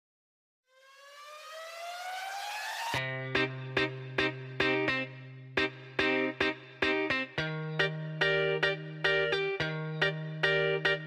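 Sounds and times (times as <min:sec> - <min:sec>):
synthetic rising tone: 0:00.8 - 0:03.0.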